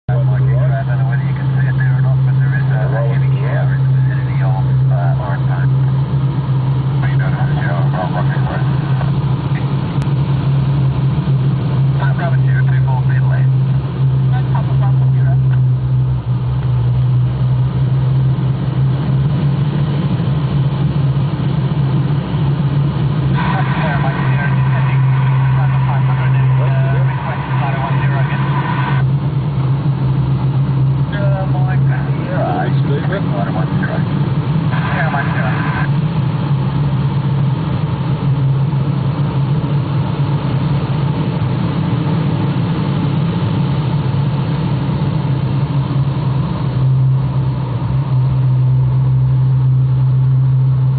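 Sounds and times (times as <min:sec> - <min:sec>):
plane engine drone: 0:00.0 - 0:50.9.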